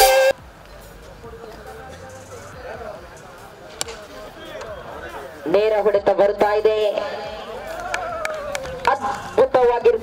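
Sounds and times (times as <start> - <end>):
faint distant voices: 0.3 - 10.0.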